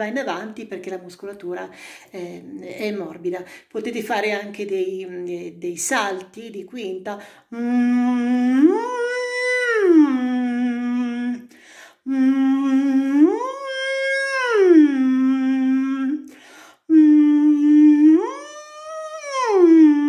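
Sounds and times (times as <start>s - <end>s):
man humming: 7.5s - 11.5s, 12.1s - 16.3s, 16.9s - 20.0s.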